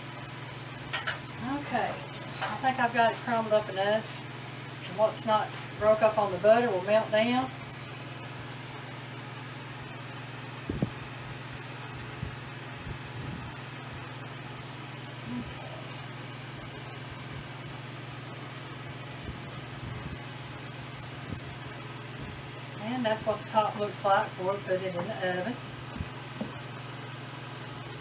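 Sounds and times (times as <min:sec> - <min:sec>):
low room hum: 0:00.0 - 0:28.0.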